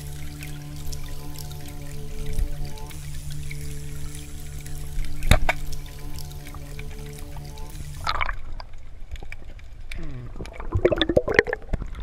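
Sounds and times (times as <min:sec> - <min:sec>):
gurgling bubbles: 0:00.0 - 0:12.0
underwater clicks: 0:00.0 - 0:12.0.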